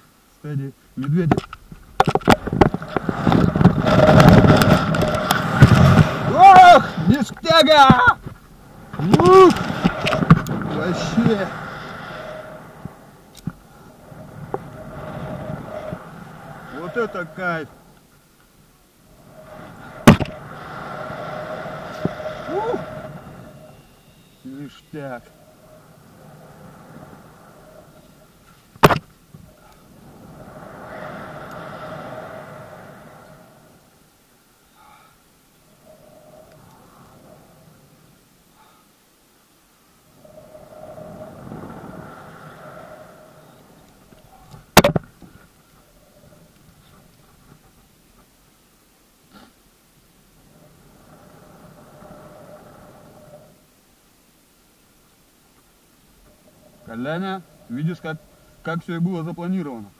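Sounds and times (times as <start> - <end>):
person whooping: 6.3 - 7.0, 9.0 - 9.6, 22.5 - 23.0
rush of air with whistle: 8.5 - 18.1, 18.9 - 28.7, 29.4 - 35.0, 35.6 - 38.8, 40.0 - 44.8, 50.4 - 53.7.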